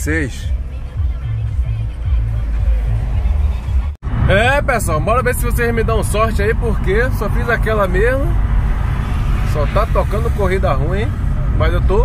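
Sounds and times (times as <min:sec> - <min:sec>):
car radio music bass line: 0:00.0 - 0:12.0.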